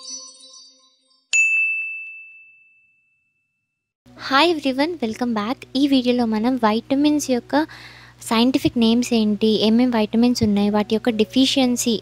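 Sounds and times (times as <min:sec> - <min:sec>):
bright ding: 0:00.0 - 0:03.6.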